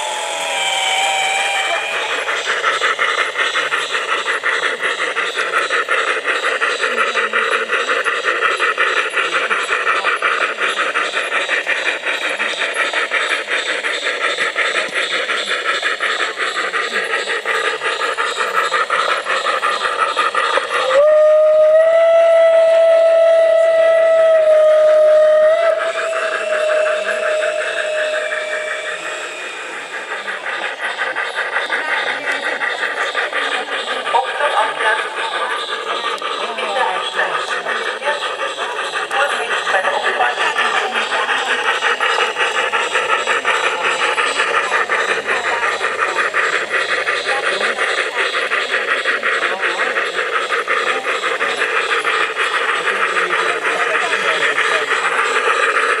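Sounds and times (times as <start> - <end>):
model locomotive whistle: 0.0 - 2.4, 20.6 - 30.0
model train wheels and motor rattling: 0.0 - 56.0.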